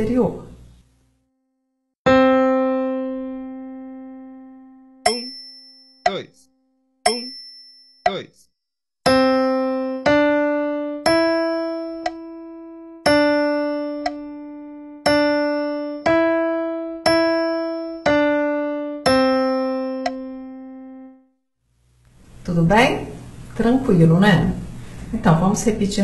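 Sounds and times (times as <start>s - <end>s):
slow keyboard piano melody: 2.1s - 6.2s, 9.0s - 21.3s.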